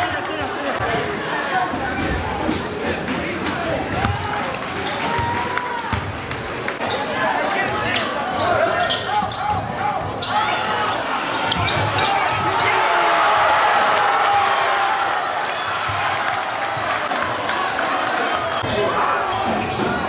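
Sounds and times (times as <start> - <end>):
crowd voices and shouts: 0.0 - 20.0
basketball bouncing: 5.0 - 6.4.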